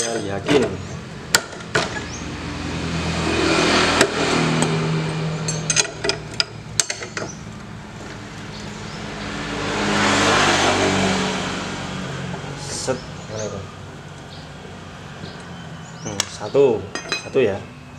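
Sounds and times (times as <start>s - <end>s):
passing vehicle engine: 0.5s - 17.9s.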